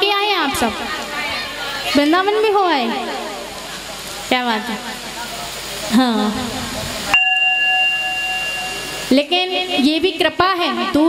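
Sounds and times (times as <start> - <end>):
bell-like ding: 7.1 - 9.2.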